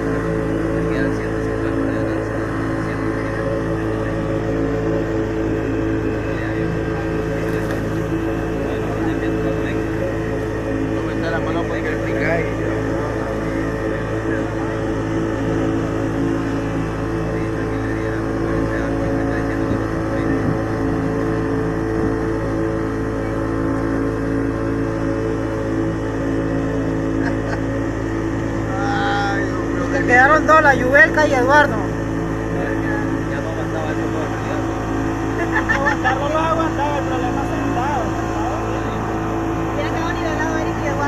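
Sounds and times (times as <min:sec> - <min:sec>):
outboard motor running steadily: 0:00.0 - 0:41.0.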